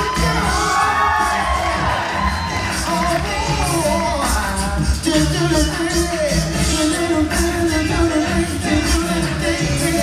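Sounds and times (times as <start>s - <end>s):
vocal beat: 0.0s - 10.0s.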